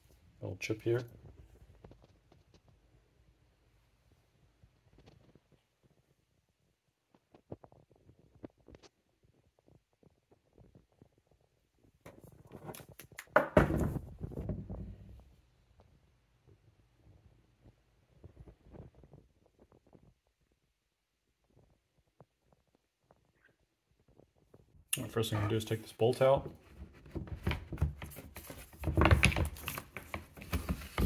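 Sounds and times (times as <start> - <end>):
close rubbing and rumble: 25.0 - 27.0.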